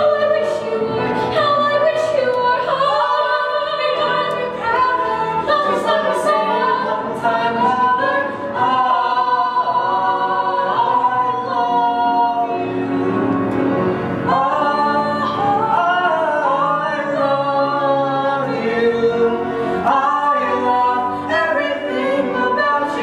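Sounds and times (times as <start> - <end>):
man and woman singing in harmony: 0.0 - 13.3, 14.2 - 23.0.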